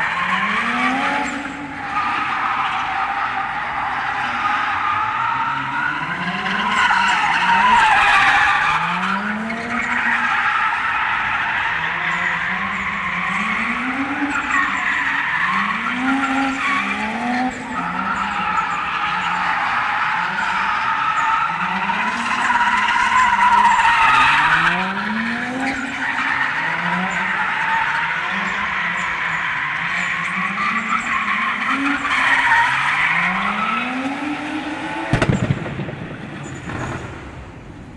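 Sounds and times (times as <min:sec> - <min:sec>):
car engine revving: 0:08.6 - 0:37.9.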